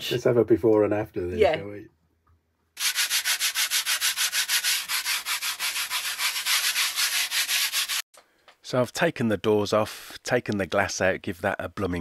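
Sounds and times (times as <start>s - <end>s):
hand scrubbing metal: 2.8s - 8.0s.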